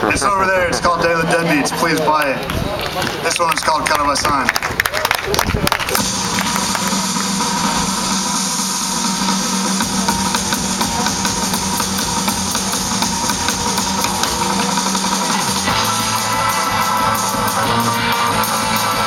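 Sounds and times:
surf rock band playing: 6.0s - 19.0s.

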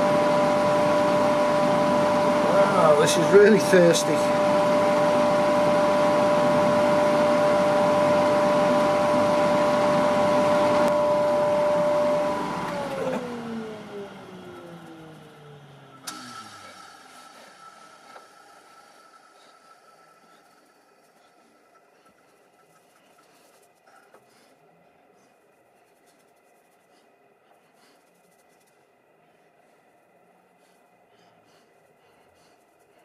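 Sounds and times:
lathe motor humming: 0.0s - 24.2s
faint brushing on wood: 20.2s - 33.0s.

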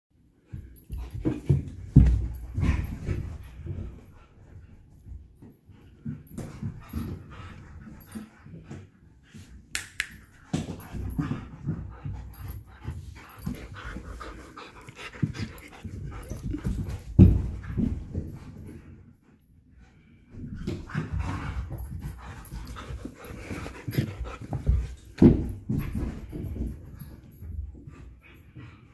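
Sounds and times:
dogs panting: 0.4s - 28.9s.

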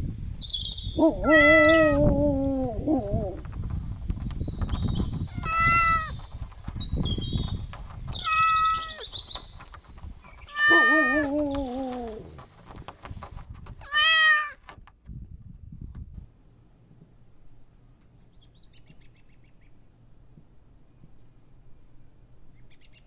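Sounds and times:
cat meowing: 1.1s - 2.2s, 5.3s - 6.1s, 8.2s - 9.0s, 10.5s - 12.3s, 13.8s - 14.6s.

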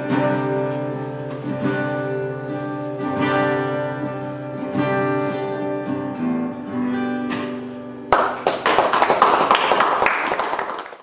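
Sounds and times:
acoustic guitar chord: 0.0s - 8.1s
audience applauding: 8.1s - 11.0s.

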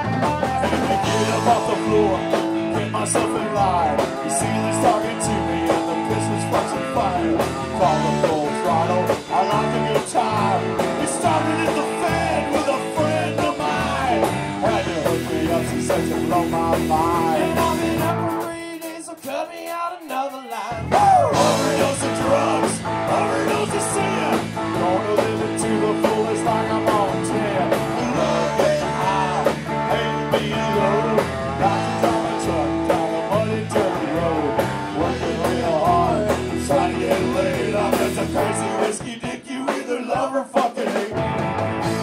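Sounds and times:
live band playing punk rock: 0.0s - 42.0s.

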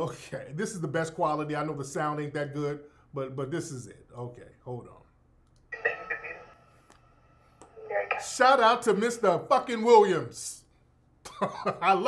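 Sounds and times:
man speaking: 0.0s - 5.1s, 8.2s - 10.7s
recorded speech playing back: 5.7s - 6.5s, 7.6s - 10.7s.

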